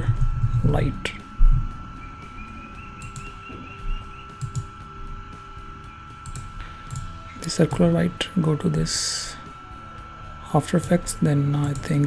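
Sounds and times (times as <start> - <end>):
high electrical whine: 0.0 - 12.0
computer mouse clicks: 3.0 - 3.3, 4.4 - 4.7, 6.2 - 7.1.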